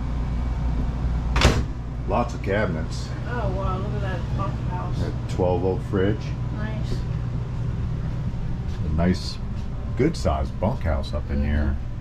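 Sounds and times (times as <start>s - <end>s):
steady low hum: 0.0s - 12.0s
microwave door latching shut: 1.4s - 1.7s.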